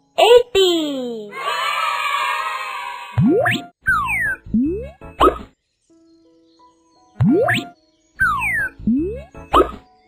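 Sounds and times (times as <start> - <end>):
playful children's music: 0.0 - 10.0.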